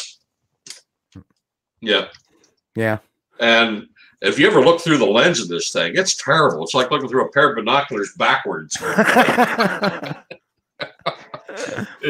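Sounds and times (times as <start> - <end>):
man laughing hard: 8.8 - 12.0.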